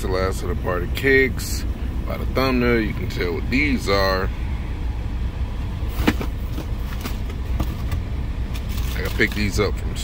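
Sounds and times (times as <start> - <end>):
car rumble inside cabin: 0.0 - 10.0.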